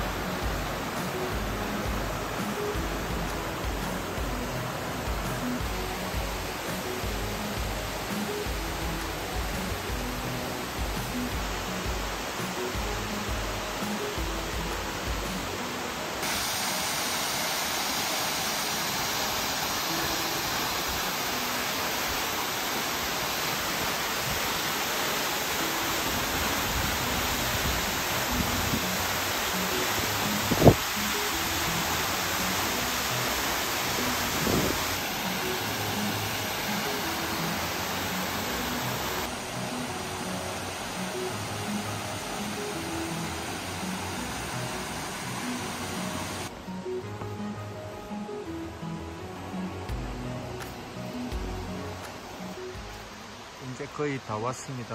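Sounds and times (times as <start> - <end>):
faint background music: 0.0 - 54.9
stream water rushing: 0.0 - 54.9.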